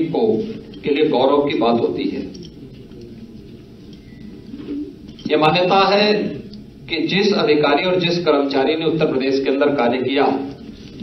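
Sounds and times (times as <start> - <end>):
faint sound system hum: 0.0 - 11.0.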